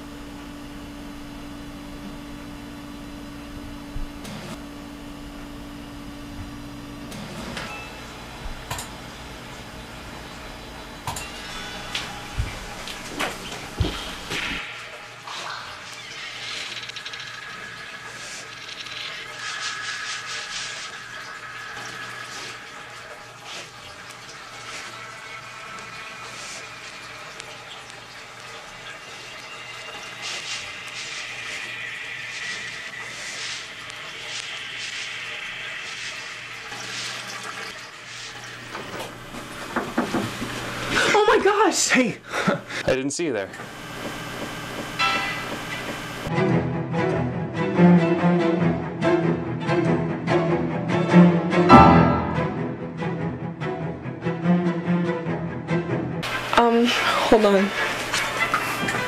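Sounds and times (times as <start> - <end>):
low hum: 0.0 - 16.2, 51.7 - 53.6
water running and gurgling: 7.9 - 39.8.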